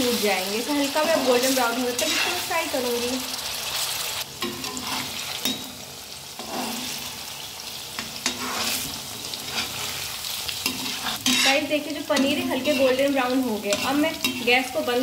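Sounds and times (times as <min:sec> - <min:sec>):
cheese cubes sizzling in oil: 0:00.0 - 0:15.0
metal spatula scraping a pan: 0:00.1 - 0:02.8, 0:04.4 - 0:05.8, 0:06.4 - 0:07.1, 0:08.0 - 0:14.8.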